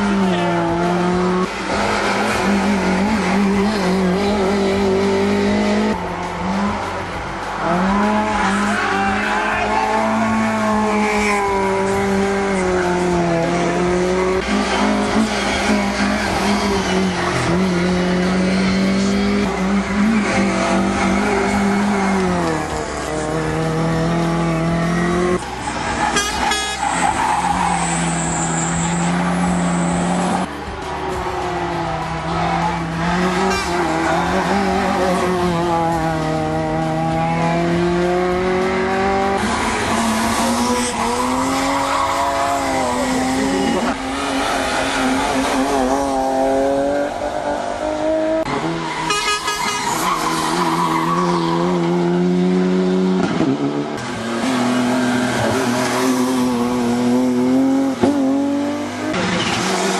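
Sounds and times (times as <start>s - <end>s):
cars passing: 0.0s - 59.9s
racing car engines revving: 0.0s - 59.9s.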